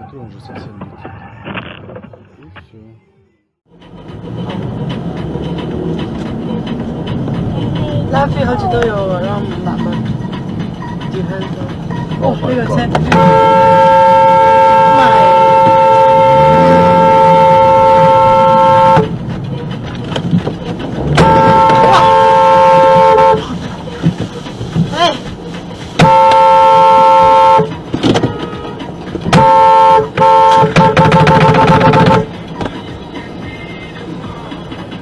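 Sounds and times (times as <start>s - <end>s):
car horn honking: 12.8s - 19.2s, 21.0s - 23.6s, 26.0s - 32.4s.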